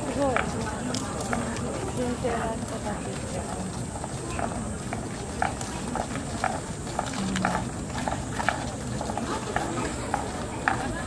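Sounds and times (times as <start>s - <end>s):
murmur of crowd voices: 0.0s - 11.0s
sandalled footsteps on stone: 0.0s - 11.0s.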